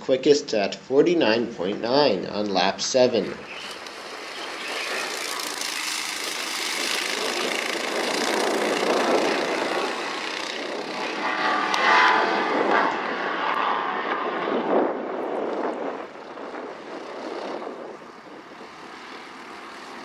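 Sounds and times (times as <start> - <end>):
go-kart engines racing: 3.0 - 14.6, 16.0 - 20.0.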